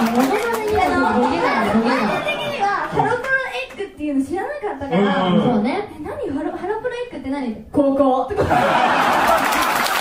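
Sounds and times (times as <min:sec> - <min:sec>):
people talking: 0:00.0 - 0:08.4.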